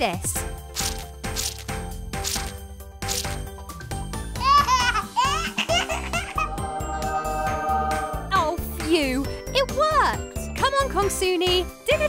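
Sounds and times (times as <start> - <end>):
background music: 0.0 - 12.0.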